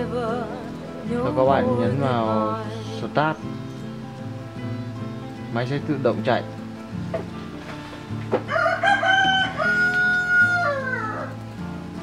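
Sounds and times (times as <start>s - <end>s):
quiet background music: 0.0s - 12.0s
rooster crowing: 8.4s - 11.5s.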